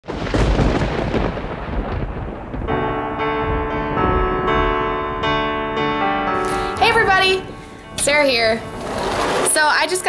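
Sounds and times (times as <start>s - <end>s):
thunder rumble: 0.0s - 10.0s
slow piano music: 2.6s - 10.0s.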